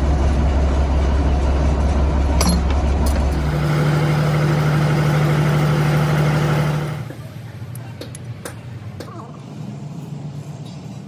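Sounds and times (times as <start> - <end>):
diesel engine idling: 0.0 - 10.6.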